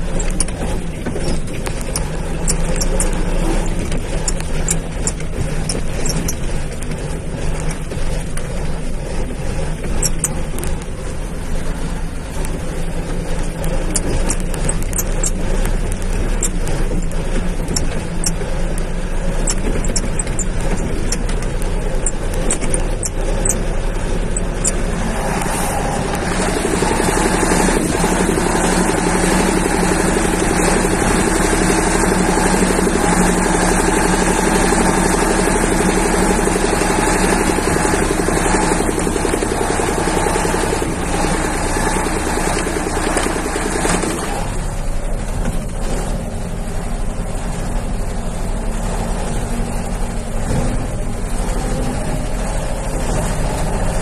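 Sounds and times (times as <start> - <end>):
clicks and rattles: 0.0 - 40.9
vehicle engine running: 0.0 - 54.0
steady rushing noise: 23.8 - 31.4.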